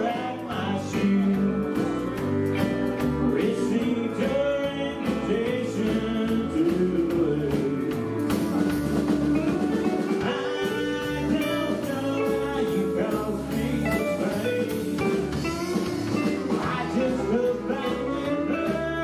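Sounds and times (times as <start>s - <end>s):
live country band playing: 0.0s - 19.0s.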